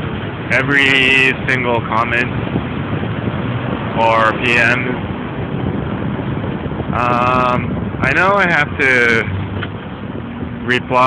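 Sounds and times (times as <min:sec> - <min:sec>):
road noise: 0:00.0 - 0:11.0
wind rushing on microphone: 0:00.0 - 0:11.0.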